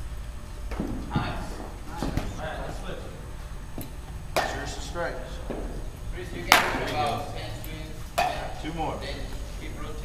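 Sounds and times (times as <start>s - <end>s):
baseball bat striking ball: 0.7s - 2.8s, 3.7s - 4.8s, 6.5s - 6.9s, 8.2s - 8.6s.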